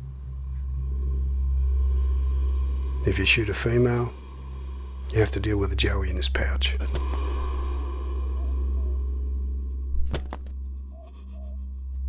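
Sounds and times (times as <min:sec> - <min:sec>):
deep low drone: 0:00.0 - 0:12.0
faint wavering tone: 0:07.3 - 0:09.9.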